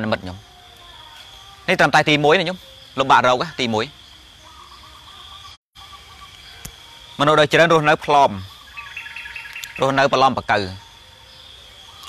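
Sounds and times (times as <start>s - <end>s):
man preaching: 0.0s - 0.4s, 1.7s - 4.0s, 7.2s - 8.5s, 9.8s - 10.8s
faint high bird chirps: 0.0s - 12.0s.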